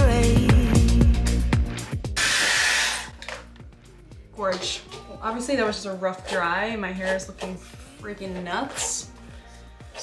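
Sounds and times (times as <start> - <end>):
pop music with singing: 0.0 - 2.2, 3.7 - 10.0
hair dryer blowing air: 2.2 - 3.2.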